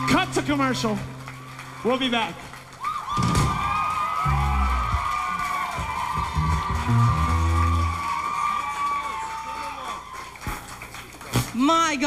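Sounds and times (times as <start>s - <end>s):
low bass notes: 4.2s - 8.2s.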